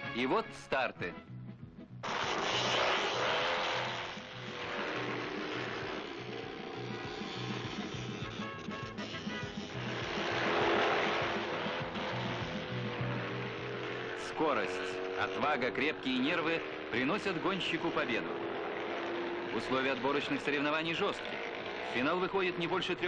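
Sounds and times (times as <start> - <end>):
music: 0.0 - 2.1, 3.8 - 13.8
motorcycles racing at high revs: 2.0 - 23.0.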